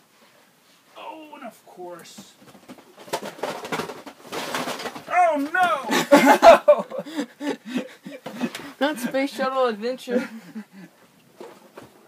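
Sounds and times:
boxed toy bricks rattling: 0:02.9 - 0:05.7.

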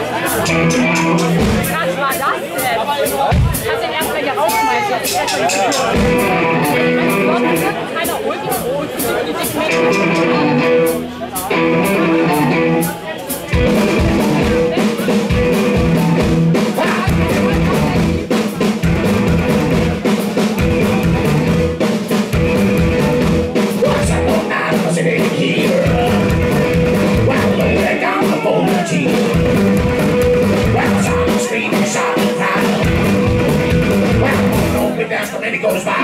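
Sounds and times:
electric guitar: 0:00.0 - 0:01.8, 0:05.8 - 0:07.9, 0:09.4 - 0:36.0
drum kit beat: 0:00.0 - 0:36.0
upright double bass: 0:00.2 - 0:01.9, 0:09.6 - 0:12.9, 0:13.6 - 0:20.0, 0:20.6 - 0:21.8, 0:22.4 - 0:28.0, 0:28.6 - 0:31.5, 0:32.7 - 0:35.0.

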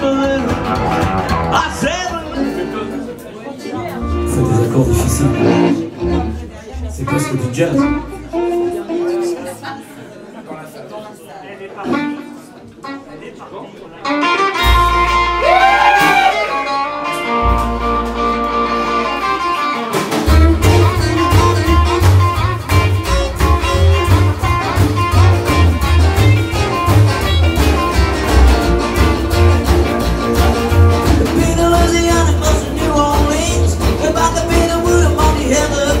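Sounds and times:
live rock and roll band: 0:00.0 - 0:09.5, 0:11.8 - 0:13.1, 0:14.0 - 0:36.0.

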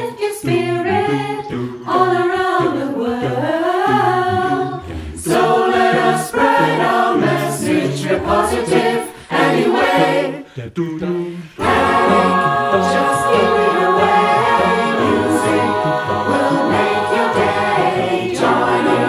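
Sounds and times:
choir singing a cappella pop: 0:00.0 - 0:19.0.

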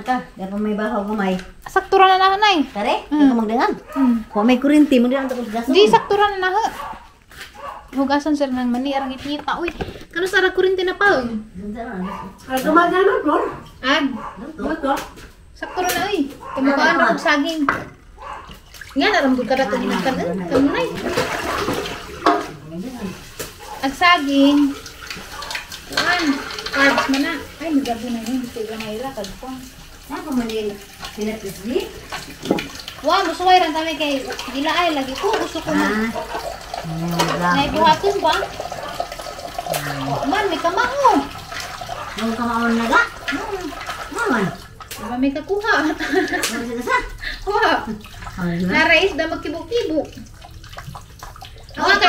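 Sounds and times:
water splashing into a basin: 0:18.2 - 0:52.0.

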